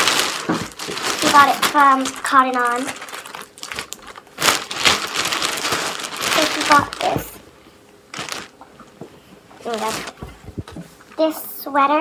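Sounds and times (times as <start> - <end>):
plastic bag crinkling: 0.0 - 7.4, 8.1 - 8.6, 9.6 - 10.4.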